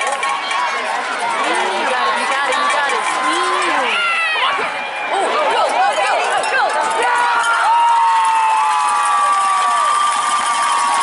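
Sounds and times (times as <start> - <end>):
voices calling and shouting: 0.0 - 7.6.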